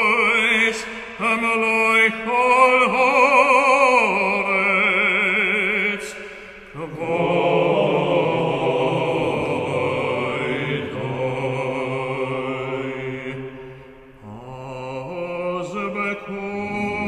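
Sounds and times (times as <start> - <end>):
cantor singing: 0.0 - 17.0
choir singing: 6.8 - 17.0
organ chords: 16.6 - 17.0.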